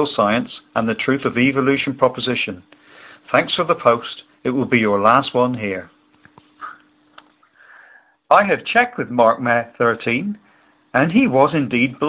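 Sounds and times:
faint steady hum: 0.0s - 12.0s
man breathing in: 2.8s - 3.3s, 7.4s - 8.3s
mouth clicks: 6.3s - 7.3s
man sniffing: 6.6s - 6.8s.

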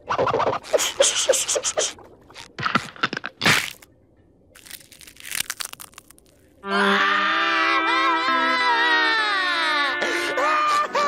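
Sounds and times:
cartoon cracking and crunching: 2.8s - 3.8s, 4.6s - 6.4s.

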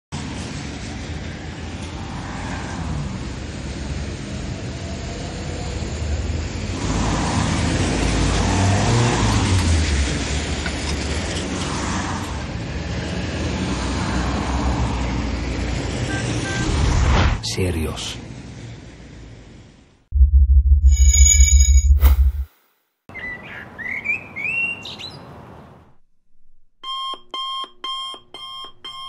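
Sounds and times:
cars passing on wet road: 0.2s - 16.6s.

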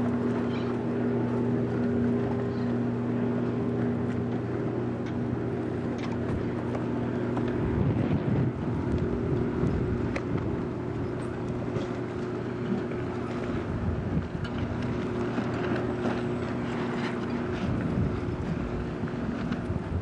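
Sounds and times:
boat engine running: 0.0s - 20.0s
water noise: 0.0s - 20.0s
wind on microphone: 6.2s - 12.0s, 12.6s - 16.0s, 16.6s - 20.0s.

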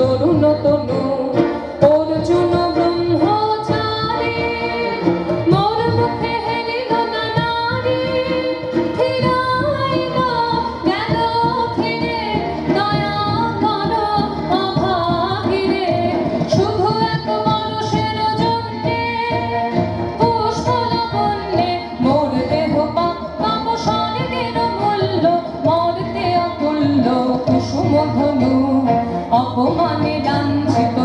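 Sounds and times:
instrumental accompaniment: 0.0s - 31.0s
woman singing into a microphone: 0.0s - 31.0s.

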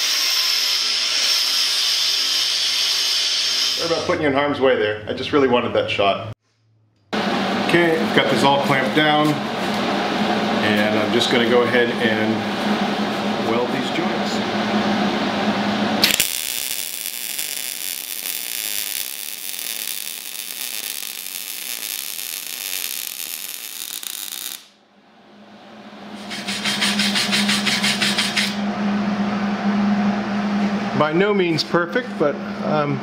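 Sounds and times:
steady hum: 7.2s - 19.6s, 24.7s - 33.0s
welding arc crackling: 16.0s - 24.8s.

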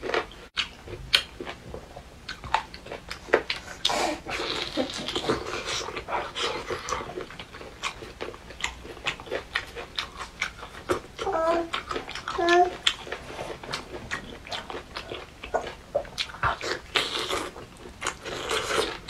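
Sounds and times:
wet chewing and biting: 0.0s - 19.0s
person humming: 12.3s - 12.8s.

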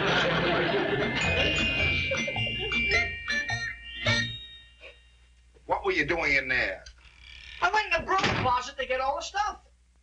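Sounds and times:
comedic music cue: 0.0s - 4.5s
man talking: 7.6s - 9.7s.

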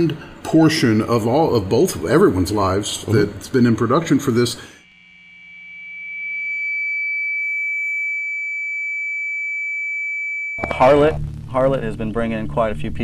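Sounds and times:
high-pitched electronic tone: 4.8s - 11.8s
person speaking: 10.6s - 12.2s.

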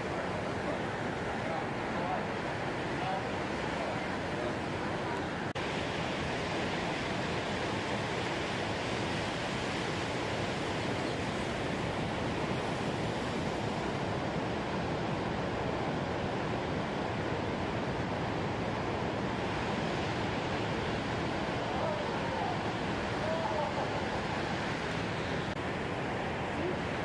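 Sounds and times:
ocean waves breaking: 0.0s - 27.0s.

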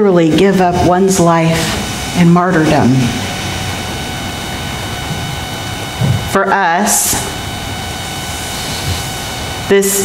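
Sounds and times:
faint hum: 0.0s - 10.0s
steady hiss: 0.2s - 10.0s.

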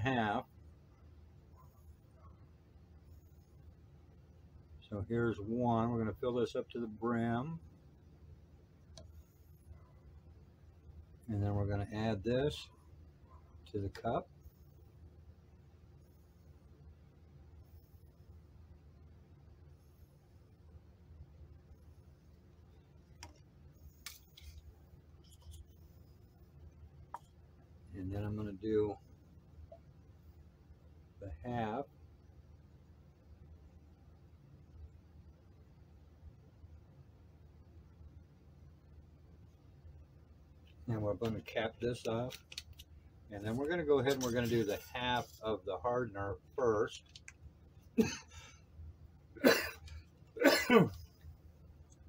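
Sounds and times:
low steady hum: 0.0s - 52.0s
man coughing: 48.0s - 48.4s, 49.4s - 51.0s.

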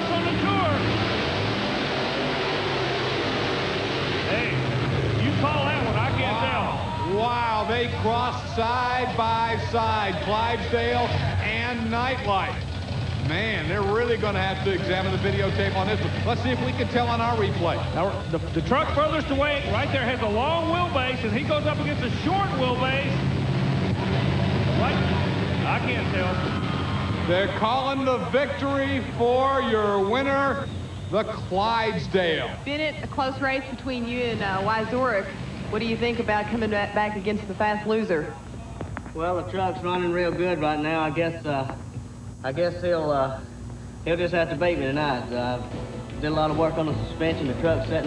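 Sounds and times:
commentator shouting: 0.0s - 1.0s, 4.3s - 12.6s
monster truck engines at full throttle: 0.0s - 37.8s.

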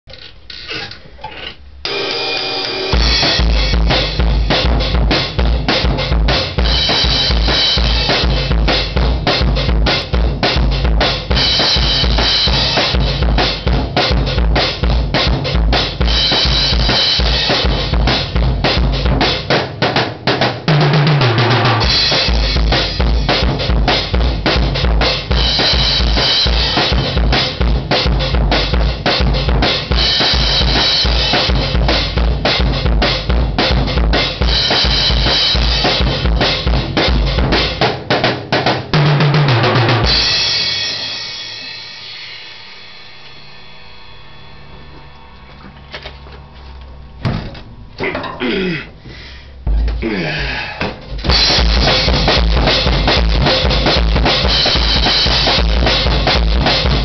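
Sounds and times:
bass drum strokes: 2.9s - 19.9s, 39.1s - 57.0s
tom fill: 39.0s - 57.0s
cymbal crashes: 40.1s - 45.5s.

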